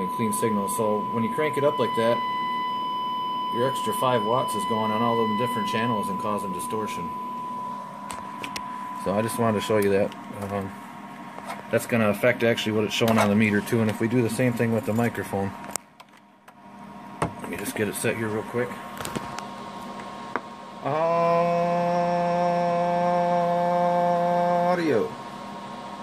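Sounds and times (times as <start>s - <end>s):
steady test tone: 0.0s - 10.9s
drawn-out voice: 20.8s - 25.1s.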